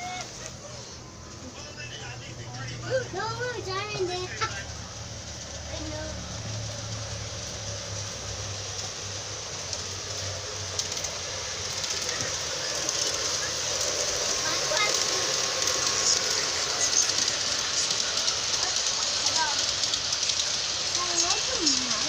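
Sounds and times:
model locomotive rolling and whirring: 0:00.0 - 0:22.0.

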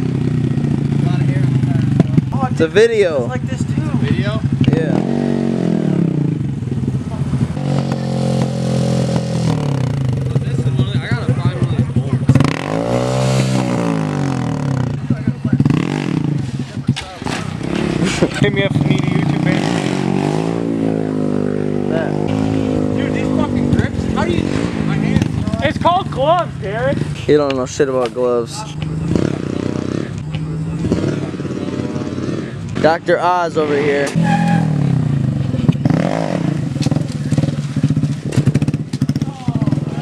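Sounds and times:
motorcycle engine running: 0:00.0 - 0:40.0
people's voices: 0:00.0 - 0:40.0.

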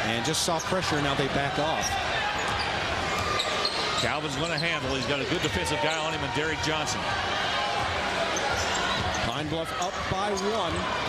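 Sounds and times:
crowd noise in gym: 0:00.0 - 0:11.0.

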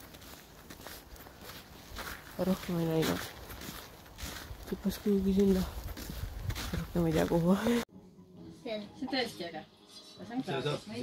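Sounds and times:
footsteps on snow: 0:00.0 - 0:07.9.

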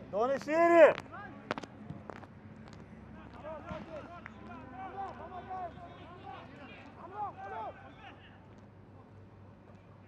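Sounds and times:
faint shouts of footballers: 0:03.1 - 0:08.5.

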